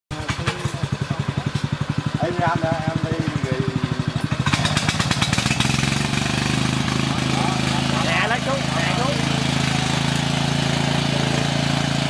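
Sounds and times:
tiller engine running: 0.1 - 12.0.

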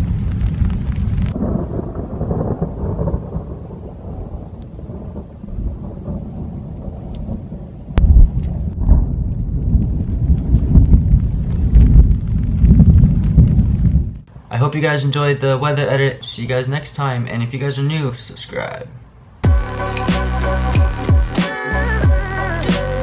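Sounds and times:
sharp thunder crack: 0.0 - 14.2
thunder rumbling: 0.0 - 14.3.

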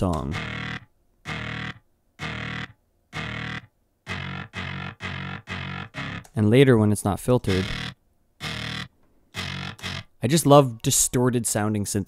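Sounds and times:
distorted synthesizer notes: 0.0 - 6.5, 7.4 - 10.1.

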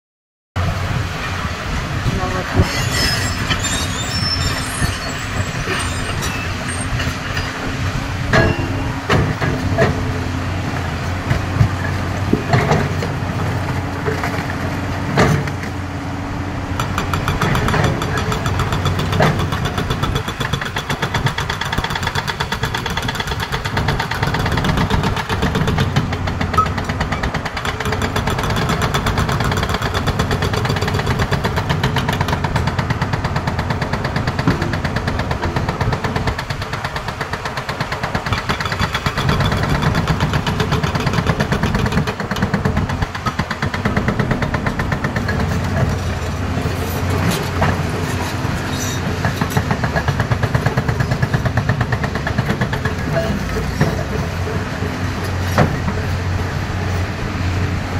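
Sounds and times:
diesel engine running: 0.6 - 57.9
hydraulic rock breaker hammering: 8.3 - 10.2, 16.8 - 56.4.

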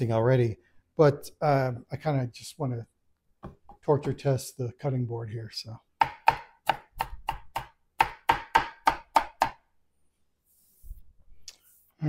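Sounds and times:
knife chopping on cutting board: 6.0 - 9.6.

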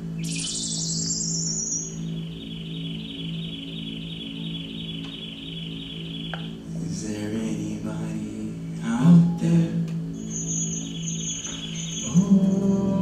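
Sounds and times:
high electronic sweep: 0.0 - 8.2
low sustained drone: 0.0 - 13.0
fluttering high chirp: 0.2 - 6.6, 10.2 - 13.0.

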